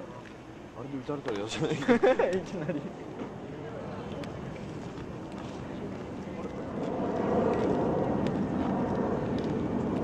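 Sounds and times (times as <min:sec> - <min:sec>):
faint murmuring voices: 0:00.0 - 0:10.0
low outdoor rumble: 0:00.0 - 0:10.0.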